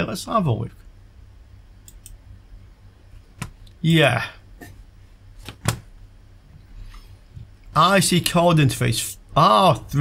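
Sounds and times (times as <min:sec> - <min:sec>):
low steady hum: 0:00.0 - 0:10.0
computer mouse clicks: 0:01.8 - 0:02.2.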